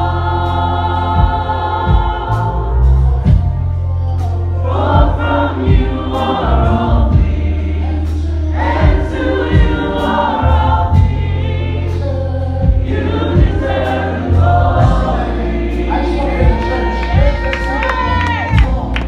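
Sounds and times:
electric bass: 0.0 - 19.0
singers in harmony: 0.0 - 19.0.

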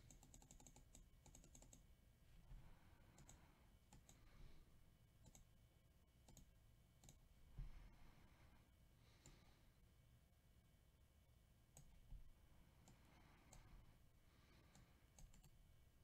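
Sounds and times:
keyboard and mouse clicking: 0.0 - 1.8, 3.2 - 4.3, 5.2 - 5.5, 6.2 - 7.2, 14.7 - 15.6.

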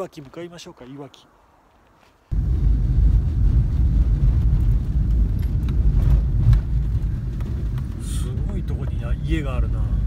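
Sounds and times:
car interior road rumble: 2.3 - 10.0.

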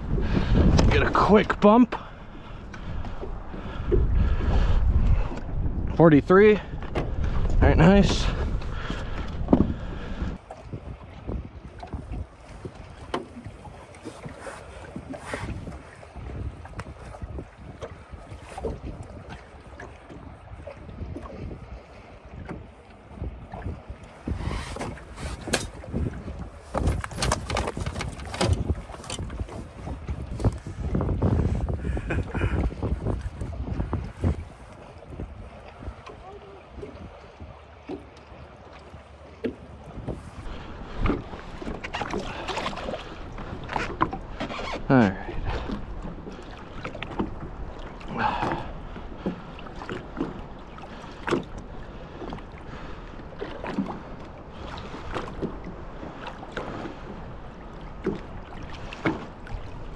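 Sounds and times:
wind buffeting microphone: 0.0 - 59.9
handling knocks and rustles: 26.7 - 29.7.

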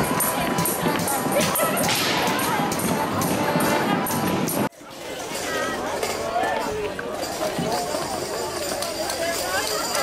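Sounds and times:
dance music: 0.0 - 4.7
crowd voices: 0.0 - 10.0.

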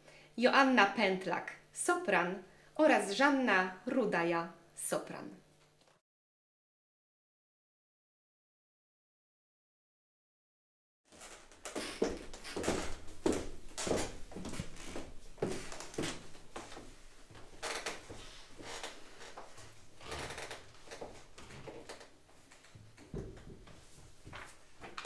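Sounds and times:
footsteps: 11.1 - 22.4
paper rustling: 24.2 - 25.0.

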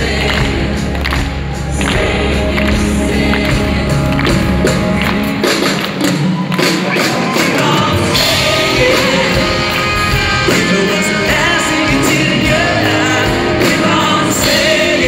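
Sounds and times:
drum and cymbal hits: 0.0 - 15.0
pop-rock band playing: 0.0 - 15.0.

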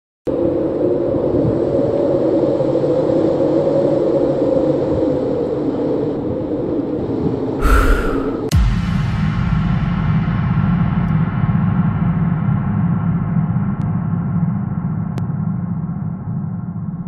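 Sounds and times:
noisy whoosh: 7.6 - 8.6
low rumbling drone: 7.6 - 8.8.

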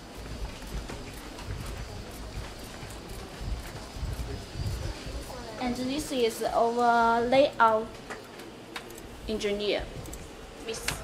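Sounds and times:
footsteps of people walking: 0.0 - 5.8.

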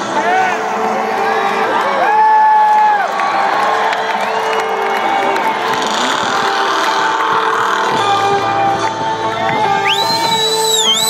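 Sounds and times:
crowd cheering and whistling: 0.0 - 11.0
live rock music: 3.2 - 11.0.

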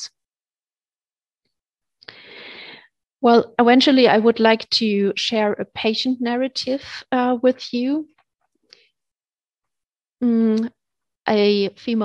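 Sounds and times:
faint breath: 2.0 - 3.0
woman speaking: 3.2 - 8.1, 10.2 - 10.7, 11.3 - 12.0.

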